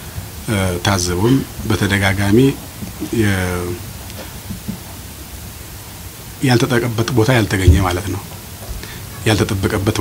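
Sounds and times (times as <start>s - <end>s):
background hiss: 0.0s - 10.0s
man speaking: 6.4s - 8.3s.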